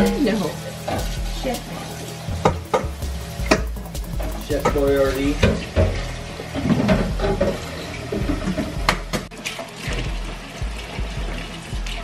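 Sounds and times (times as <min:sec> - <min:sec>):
background music: 0:00.0 - 0:12.0
tap water running into sink: 0:00.0 - 0:12.0.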